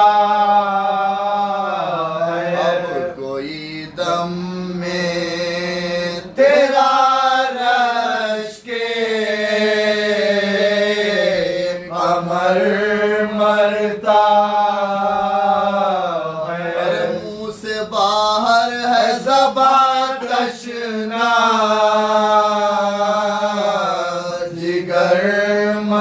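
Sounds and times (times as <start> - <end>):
man singing mournful phrases: 0.0 - 26.0.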